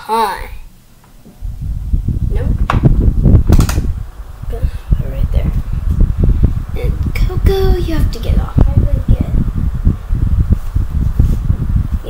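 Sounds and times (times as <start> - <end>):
fan air buffeting microphone: 0.0 - 12.0.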